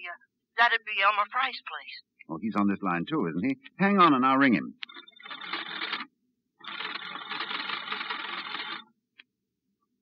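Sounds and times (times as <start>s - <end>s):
telephone bell ringing: 4.9s - 6.0s.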